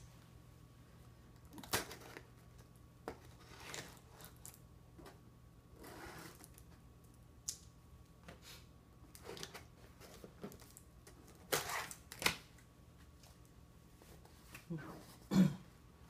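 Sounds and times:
scissors slitting packing tape: 0:11.3 - 0:12.4.

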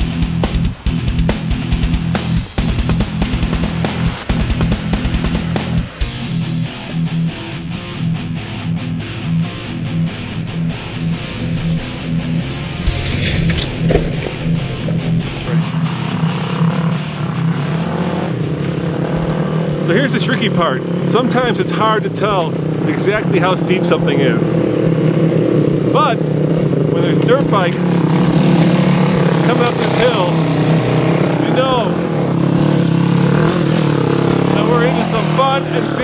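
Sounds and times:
dirt bike engines: 0:00.0 - 0:36.0.

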